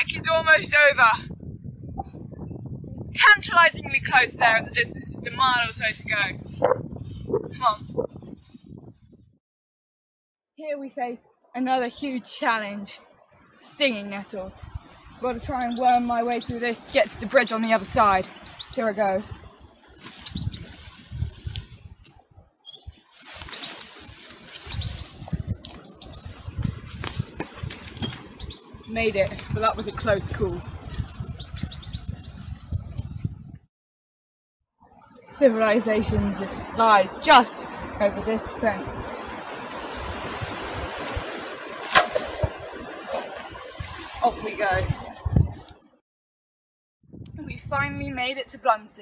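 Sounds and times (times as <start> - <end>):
wind on microphone: 0.0 - 9.4, 14.0 - 33.7, 35.0 - 45.9, 47.0 - 48.6
rustling of leaves and stems: 14.8 - 32.9, 36.4 - 45.7
scuffing footsteps: 23.1 - 28.3.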